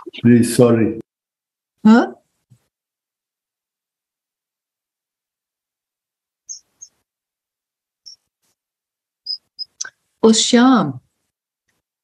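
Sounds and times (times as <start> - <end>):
short high-pitched chirps: 6.5 - 7.0, 8.1 - 8.3, 9.3 - 10.0.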